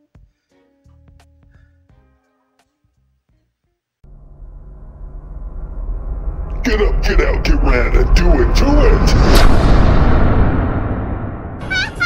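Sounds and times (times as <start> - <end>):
deep boom rumbling: 4.1 - 12.0.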